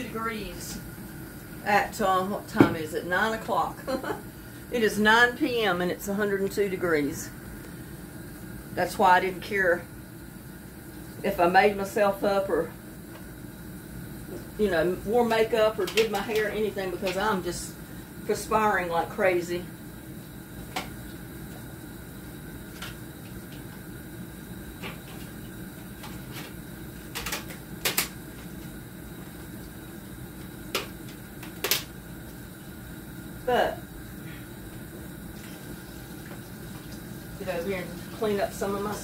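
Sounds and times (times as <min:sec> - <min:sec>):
low room hum: 0:00.0 - 0:39.0.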